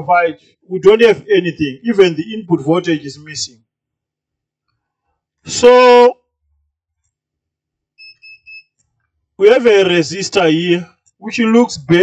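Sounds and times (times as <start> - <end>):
multimeter high-pitched beeps: 8.0 - 8.8.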